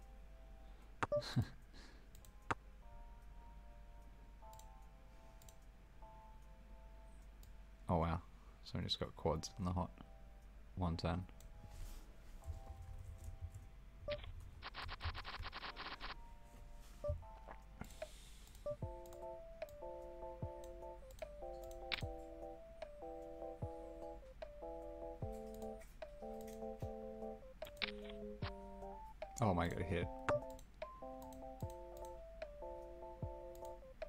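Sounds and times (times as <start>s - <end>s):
soft sustained chords music: 0.0s - 1.5s, 2.1s - 14.1s, 16.2s - 34.0s.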